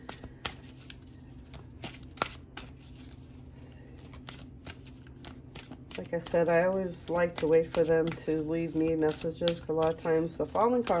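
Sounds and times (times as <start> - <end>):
cards being shuffled: 0.0 - 11.0.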